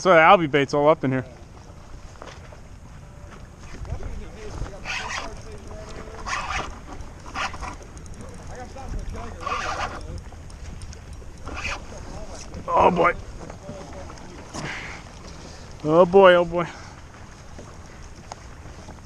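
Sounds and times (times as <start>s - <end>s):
waves slapping kayak hull: 0.0s - 19.0s
wind rumbling on microphone: 0.0s - 19.0s.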